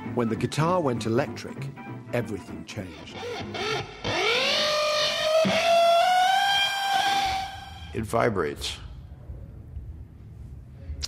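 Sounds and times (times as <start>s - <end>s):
electric guitar note sliding up: 3.1s - 8.0s.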